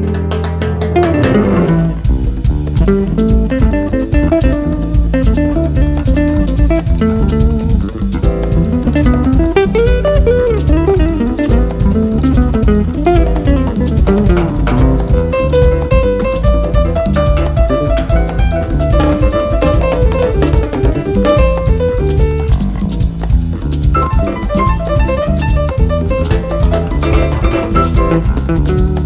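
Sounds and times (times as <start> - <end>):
jazz band instrumental: 0.0 - 29.0.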